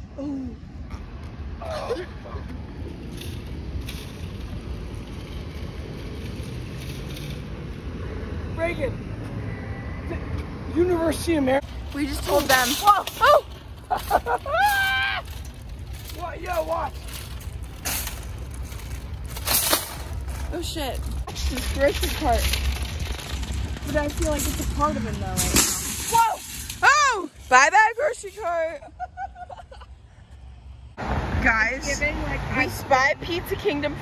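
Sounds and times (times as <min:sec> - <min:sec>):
shopping cart rolling on concrete: 0:02.9 - 0:07.8, 0:11.7 - 0:28.8.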